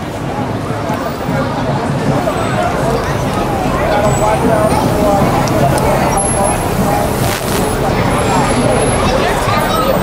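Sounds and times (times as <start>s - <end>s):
hubbub of voices: 0.0s - 10.0s
traffic noise: 0.0s - 10.0s.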